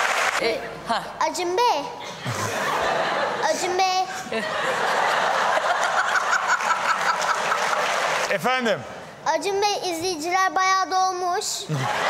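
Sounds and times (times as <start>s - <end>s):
audience laughing: 2.0s - 8.3s, 11.7s - 12.0s
person's rhythmic laugh: 2.1s - 2.9s, 11.7s - 12.0s.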